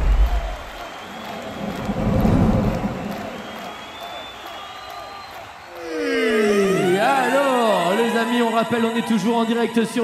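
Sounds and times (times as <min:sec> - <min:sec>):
low thunder-like rumble: 0:01.5 - 0:03.4.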